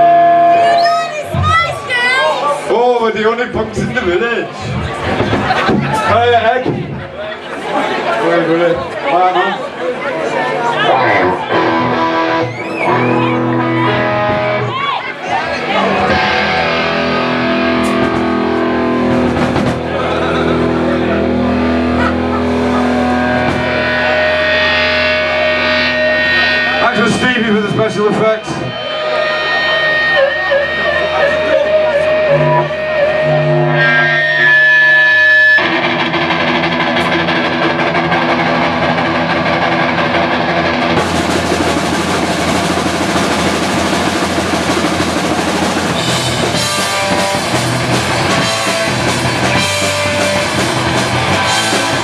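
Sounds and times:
guitar feedback tones: 0.0s - 2.7s, 10.8s - 52.0s
rock band playing: 0.0s - 9.0s, 9.9s - 52.0s
distorted electric guitar chord: 15.6s - 52.0s.

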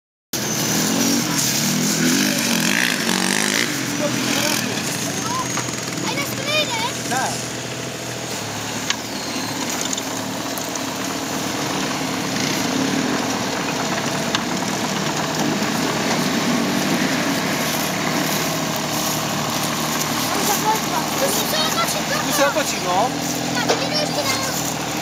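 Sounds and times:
excavator diesel engine running: 0.4s - 25.0s.

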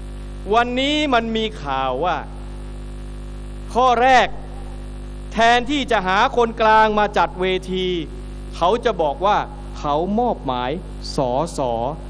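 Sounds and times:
electrical mains hum: 0.0s - 12.0s
man speaking: 0.5s - 2.4s, 3.7s - 12.0s.

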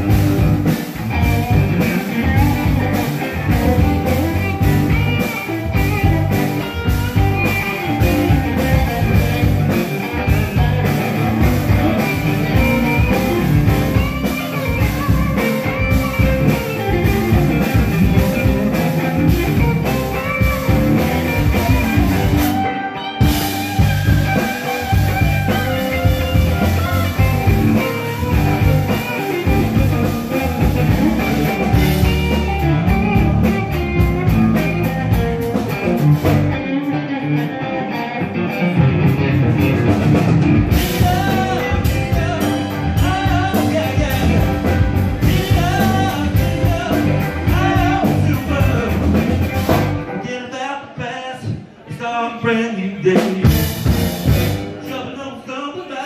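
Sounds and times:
live rock band playing: 0.0s - 56.0s.

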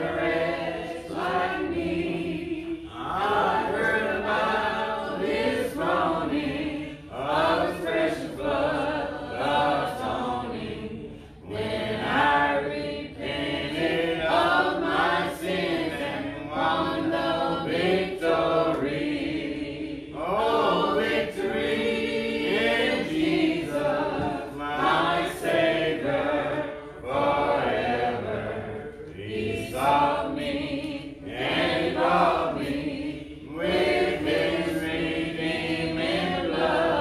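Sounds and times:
congregation singing a hymn: 0.0s - 37.0s.

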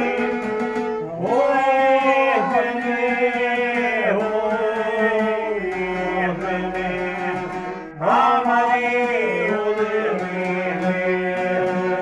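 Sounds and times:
lute and violins folk music: 0.0s - 12.0s
man singing: 0.0s - 12.0s.

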